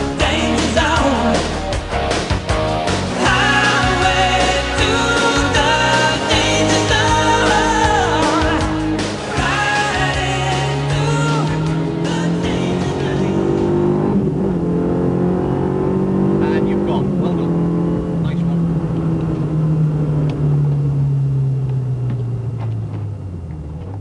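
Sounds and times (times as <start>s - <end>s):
rally car engine at high revs: 9.9s - 24.0s.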